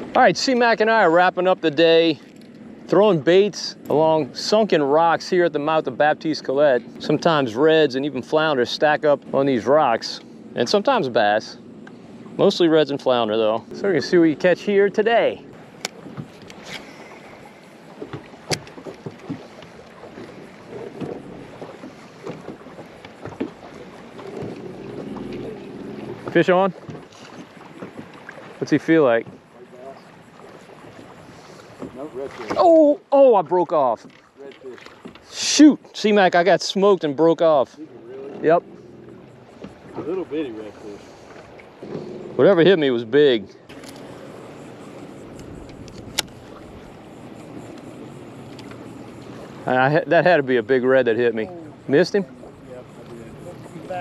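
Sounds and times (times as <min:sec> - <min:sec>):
water around boat: 0:00.0 - 0:54.0
wind: 0:00.0 - 0:54.0
sharp click: 0:45.3 - 0:46.4.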